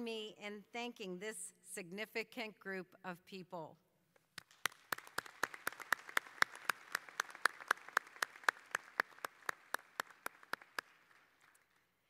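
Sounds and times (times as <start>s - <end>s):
close hand claps: 4.2s - 12.0s
audience applause: 4.5s - 11.8s.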